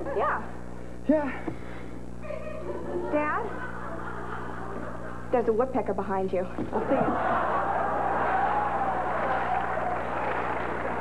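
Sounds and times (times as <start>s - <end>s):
studio audience laughing: 2.3s - 5.3s, 6.7s - 11.0s.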